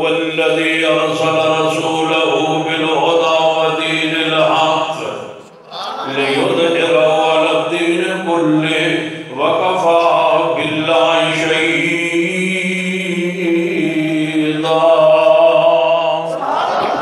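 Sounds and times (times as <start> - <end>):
man reciting melodically: 0.0 - 17.0.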